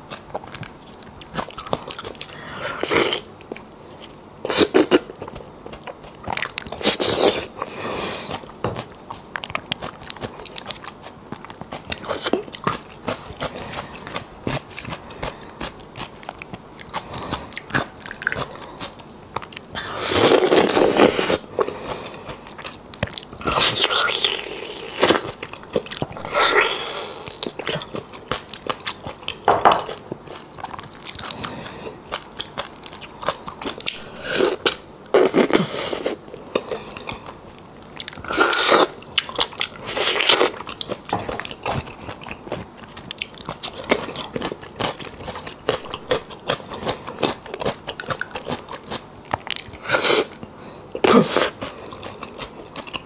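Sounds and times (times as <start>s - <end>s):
wet chewing and mouth clicks: 3.1s - 7.4s, 8.3s - 24.2s, 24.8s - 53.0s.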